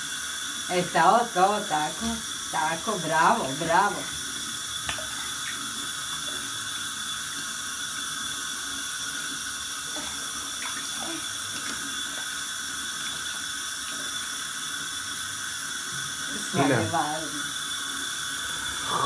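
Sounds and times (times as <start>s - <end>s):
tap running into bath water: 1.9s - 2.4s, 3.0s - 8.0s.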